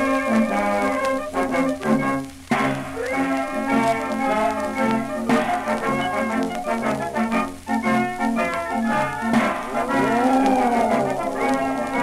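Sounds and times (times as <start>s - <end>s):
brass band playing: 0.2s - 12.0s.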